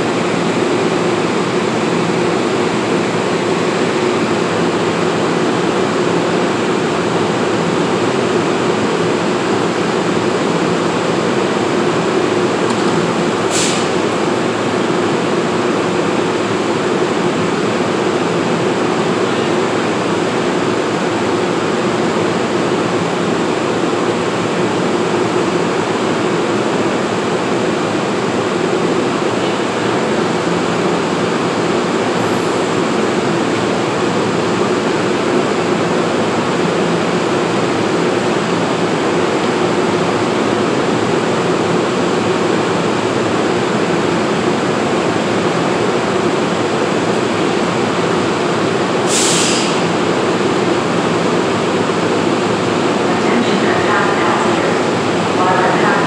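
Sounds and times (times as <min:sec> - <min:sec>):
standing train equipment humming: 0:00.0 - 0:56.0.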